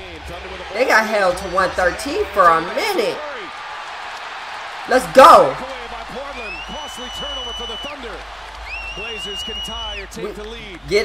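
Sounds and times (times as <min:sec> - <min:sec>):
commentator's voice: 0:00.0 - 0:03.4, 0:04.9 - 0:08.2, 0:09.0 - 0:11.0
arena crowd noise: 0:00.0 - 0:11.0
long high whistles: 0:06.4 - 0:10.1.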